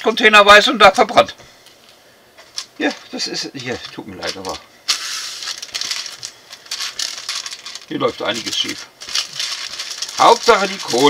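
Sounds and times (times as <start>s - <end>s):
plastic packaging crinkling: 1.0s - 11.0s.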